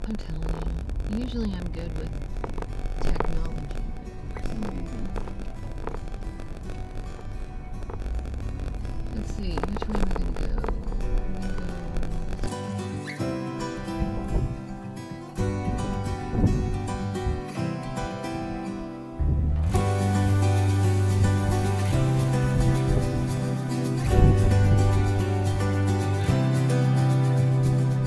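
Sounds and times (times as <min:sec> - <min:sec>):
person's voice: 0:00.0 - 0:02.2, 0:03.0 - 0:05.4, 0:09.1 - 0:12.3
soft acoustic guitar music: 0:00.0 - 0:28.0
wind rumbling on microphone: 0:00.0 - 0:28.0.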